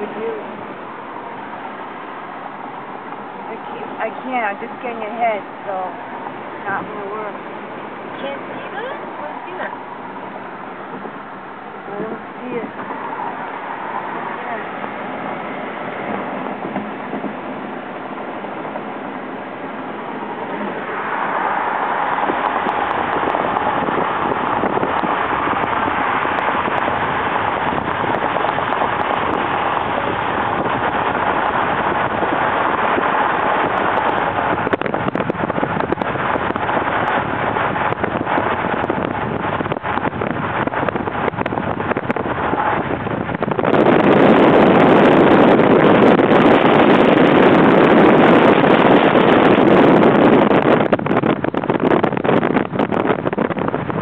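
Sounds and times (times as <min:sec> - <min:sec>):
car road and wind noise: 0:00.0 - 0:54.0
wind on microphone: 0:00.0 - 0:54.0.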